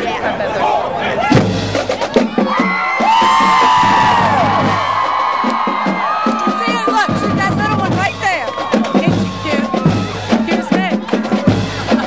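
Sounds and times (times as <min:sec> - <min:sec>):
crowd cheering and whooping: 0:02.3 - 0:12.0.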